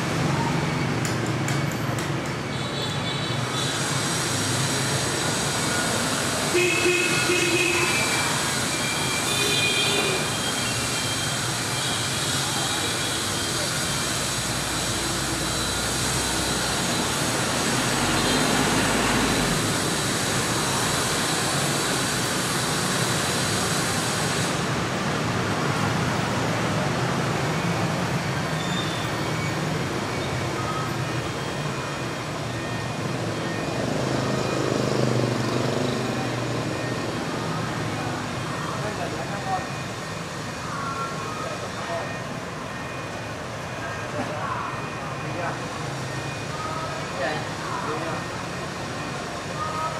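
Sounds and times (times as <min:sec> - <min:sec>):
city traffic noise: 0:00.0 - 0:49.9.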